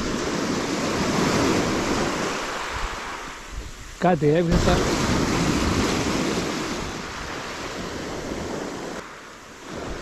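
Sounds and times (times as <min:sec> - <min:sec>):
surf breaking on shore: 0:00.0 - 0:10.0
wind on microphone: 0:00.0 - 0:10.0.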